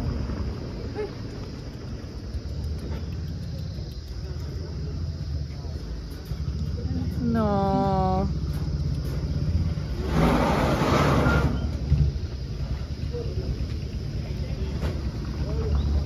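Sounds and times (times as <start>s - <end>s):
vehicle engine idling: 0.0s - 16.0s.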